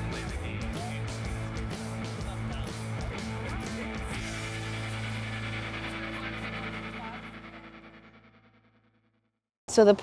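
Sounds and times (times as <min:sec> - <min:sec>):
held musical chord: 0:04.1 - 0:08.3.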